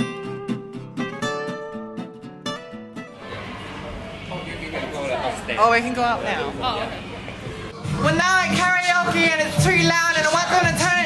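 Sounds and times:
voices in busy room: 3.0 - 11.0
loud karaoke music: 7.6 - 11.0.

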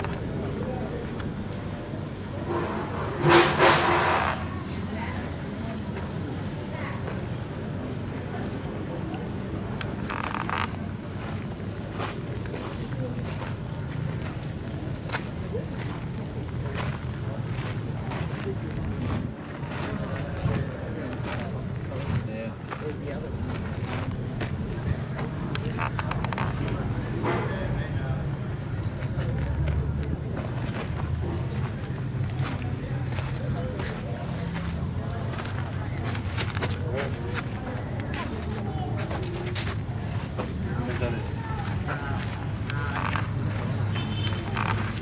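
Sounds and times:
people talking indistinctly: 0.0 - 45.0
soft footsteps on dirt path: 4.3 - 45.0.

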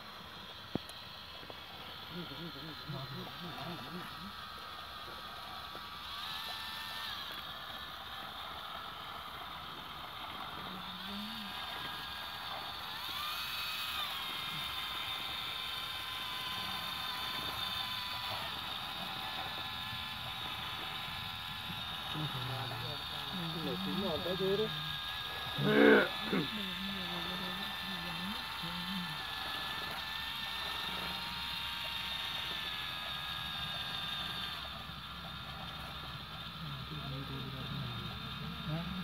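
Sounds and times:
toy electric motors whining: 0.0 - 39.0.

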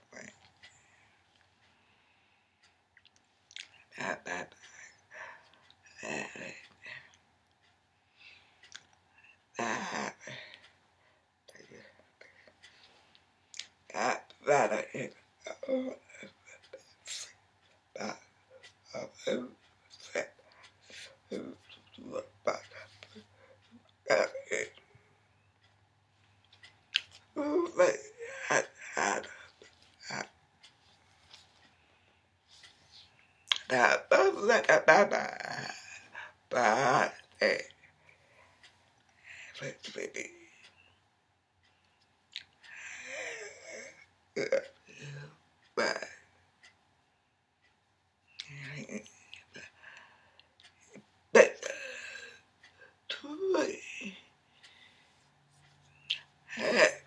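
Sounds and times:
woman's wordless vocal sound: 24.0 - 24.9, 27.3 - 30.3, 53.1 - 54.3, 56.0 - 57.0
woman's throaty vocal sound: 56.5 - 57.0.

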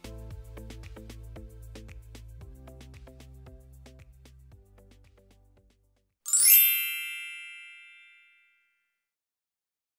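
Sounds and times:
bright chime: 6.3 - 8.8.

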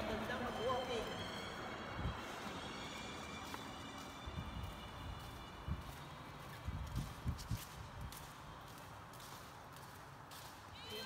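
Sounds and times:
person speaking: 0.0 - 1.3
low background noise: 0.0 - 11.0
footsteps on concrete: 2.1 - 11.0.

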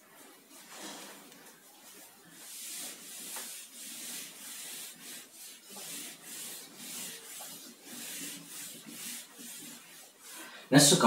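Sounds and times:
eraser wiping whiteboard: 0.5 - 10.4.

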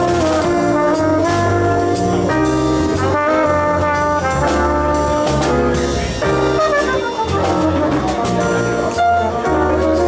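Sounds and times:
bass guitar: 0.0 - 10.0
cymbals: 0.0 - 10.0
drums: 0.0 - 10.0
electric keyboard: 0.0 - 10.0
trumpet jazz melody: 0.0 - 10.0.

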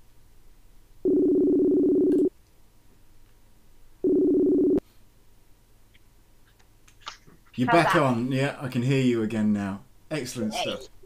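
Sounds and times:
call ringing tone beeps: 1.1 - 2.3.

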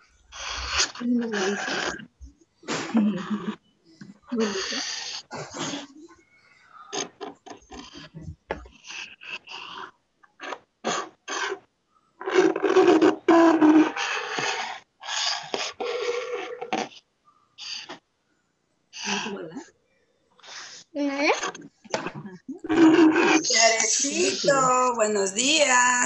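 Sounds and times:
fingers rubbing on microphone: 0.3 - 2.1, 6.9 - 17.0, 20.4 - 26.0.

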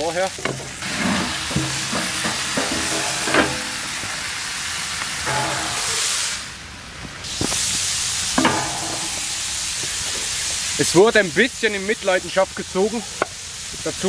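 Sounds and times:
meat sizzling in a pan: 0.0 - 14.0.

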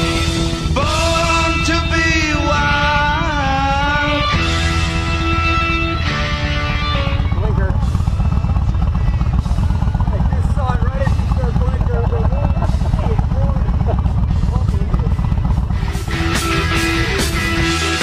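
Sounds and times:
motorcycle engines idling: 0.0 - 18.0
rock music: 0.0 - 18.0
man talking: 7.2 - 7.9, 10.0 - 15.3.

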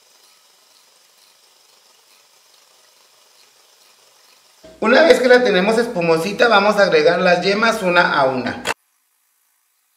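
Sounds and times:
faint steady hiss: 0.0 - 9.9.

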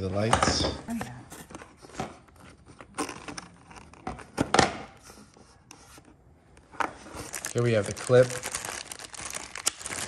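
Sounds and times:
plastic bags rustling: 6.9 - 10.0.

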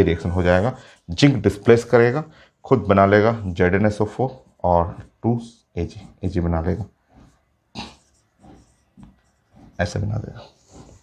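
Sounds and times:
marker writing on whiteboard: 2.8 - 11.0
breath through the nose: 7.0 - 9.8, 10.4 - 11.0.

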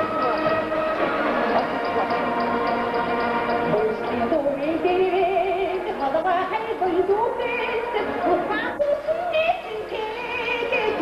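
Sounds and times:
woman singing with vibrato: 3.6 - 11.0.

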